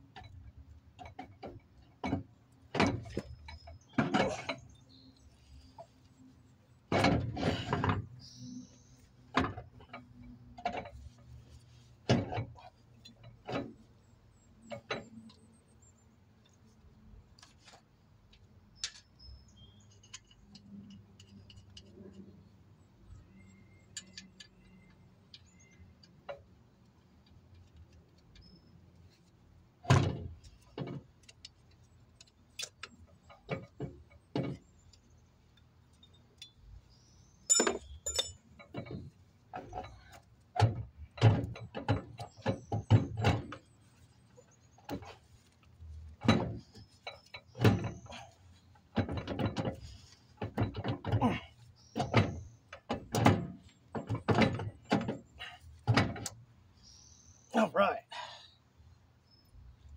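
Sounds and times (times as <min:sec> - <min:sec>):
heavy metal knocks and clunks: 0:01.0 - 0:04.7, 0:37.5 - 0:43.7, 0:48.9 - 0:56.3.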